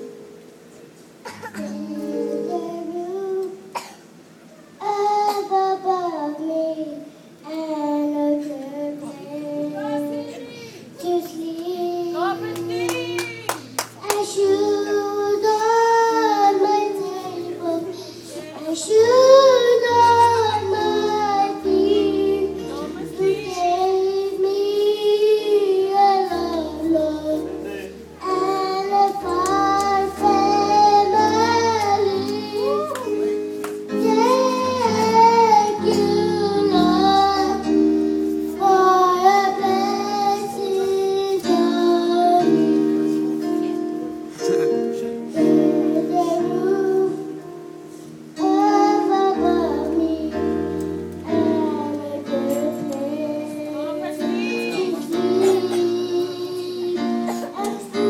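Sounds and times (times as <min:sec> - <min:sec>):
keyboard accompaniment: 0:00.0 - 0:58.0
girl singing into microphone: 0:00.8 - 0:58.0.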